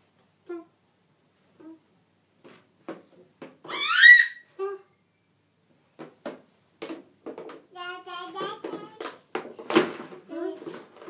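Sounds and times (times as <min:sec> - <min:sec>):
baby squealing: 0:03.6 - 0:04.5
baby babbling: 0:07.7 - 0:09.0.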